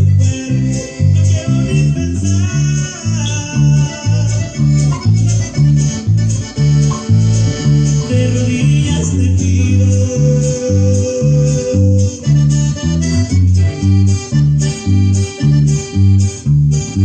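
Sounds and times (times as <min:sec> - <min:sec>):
electric bass guitar plucked notes: 0:00.0 - 0:17.0
latin band playing: 0:00.0 - 0:17.0.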